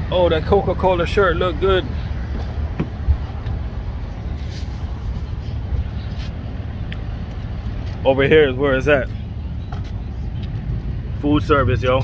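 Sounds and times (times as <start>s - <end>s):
low traffic rumble: 0.0s - 12.0s.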